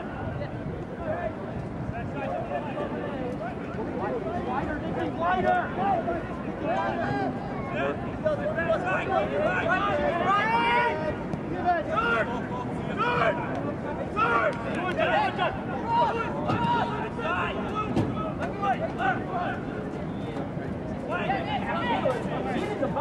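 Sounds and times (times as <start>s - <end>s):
open-air field noise: 0.0s - 23.0s
people calling and shouting: 0.0s - 23.0s.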